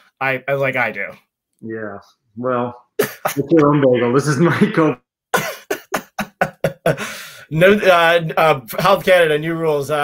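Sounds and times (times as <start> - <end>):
man laughing: 3.0 - 7.4.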